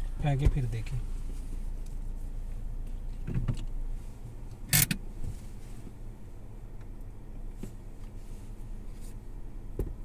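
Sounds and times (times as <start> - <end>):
soft rustle: 0.0 - 6.5, 7.4 - 9.4
car cabin hum: 0.0 - 10.0.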